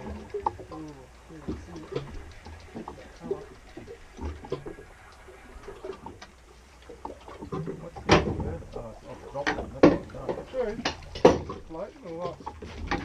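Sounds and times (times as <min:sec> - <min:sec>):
faint clicks: 0:00.0 - 0:13.0.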